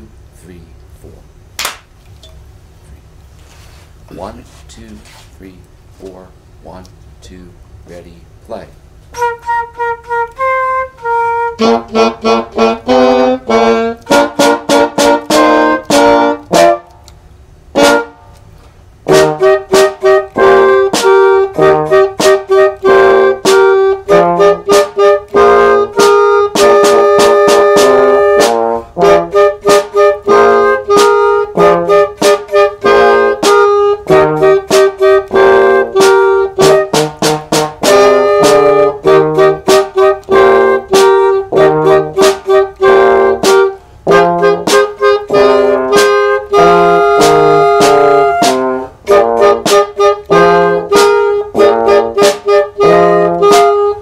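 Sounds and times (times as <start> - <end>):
small band playing up-tempo tune: 9.2 - 16.8, 19.1 - 54.0.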